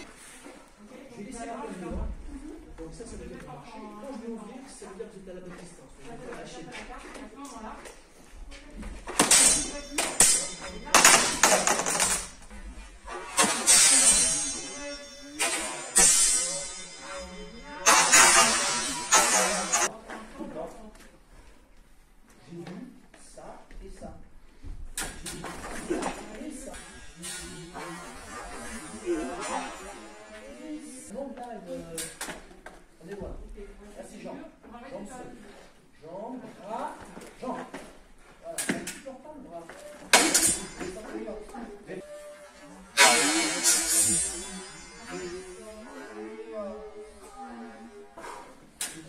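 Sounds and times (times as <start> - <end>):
indistinct voices in a hall: 0.0 - 49.0
sword blades clashing: 9.1 - 19.9, 25.0 - 30.6, 40.0 - 41.3, 42.9 - 46.2.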